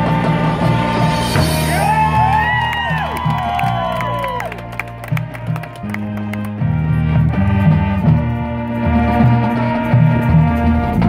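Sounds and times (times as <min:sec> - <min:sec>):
keyboard notes: 0:00.0 - 0:11.0
low electric bass notes: 0:00.0 - 0:11.0.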